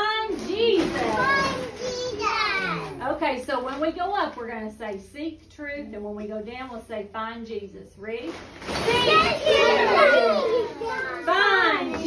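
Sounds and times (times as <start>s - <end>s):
children calling out excitedly: 1.0s - 3.0s, 8.8s - 12.0s.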